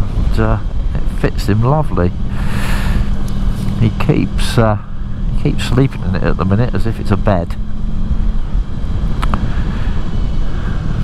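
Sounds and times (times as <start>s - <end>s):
motorcycle engine rumble: 0.0s - 11.0s
wind noise: 0.0s - 11.0s.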